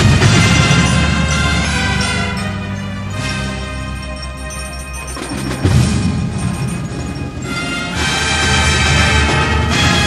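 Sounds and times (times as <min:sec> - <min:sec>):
timpani: 0:00.0 - 0:04.1, 0:05.2 - 0:10.0
busy low percussion: 0:00.0 - 0:10.0.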